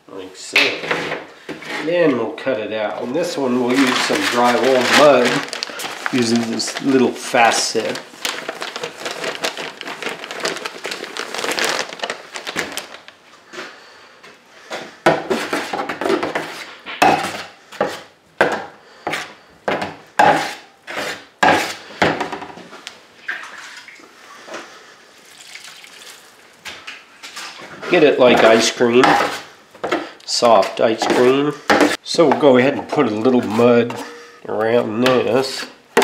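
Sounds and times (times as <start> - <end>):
knife scraping compound in pan: 20.2 - 21.9.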